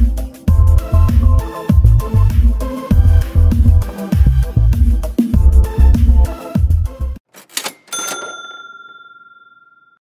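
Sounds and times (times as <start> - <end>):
music: 0.0 - 7.2
bright bell ding: 7.6 - 10.0.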